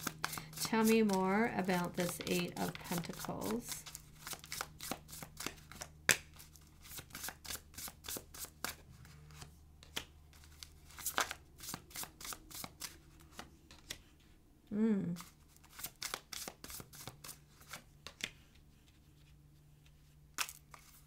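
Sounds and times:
cards being shuffled: 0.0s - 14.3s, 15.2s - 21.0s.

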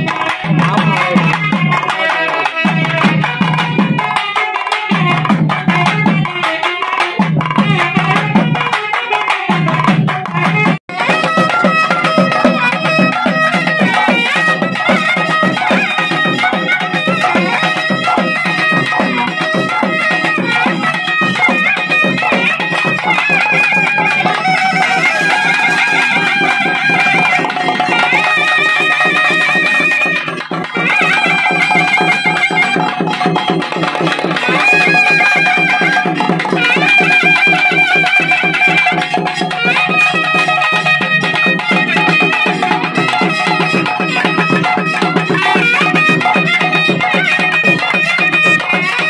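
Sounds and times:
fast drumming: 0.0s - 49.0s
reed pipe melody: 0.0s - 49.0s.

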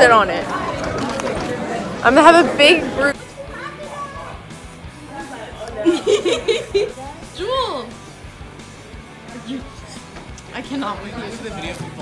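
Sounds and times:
music: 0.0s - 12.0s
teenagers chattering: 0.0s - 12.0s.

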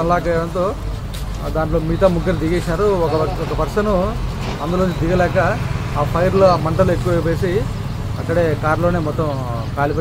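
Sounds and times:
road traffic rumble: 0.0s - 10.0s
man speaking: 1.4s - 10.0s.

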